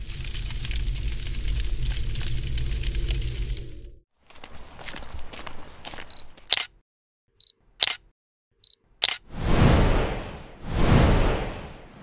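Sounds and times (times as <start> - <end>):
film crackle and hiss: 0.0 - 4.0.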